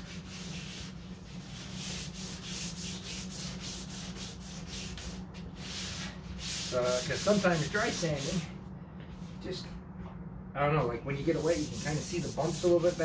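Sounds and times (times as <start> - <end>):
wet sandpaper rubbing: 0.0 - 8.4, 11.2 - 13.0
steady low hum: 0.0 - 13.0.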